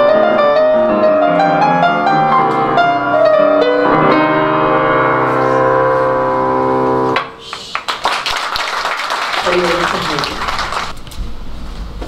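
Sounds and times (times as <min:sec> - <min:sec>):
keyboard chord: 0:00.0 - 0:07.2
audience clapping: 0:07.3 - 0:11.0.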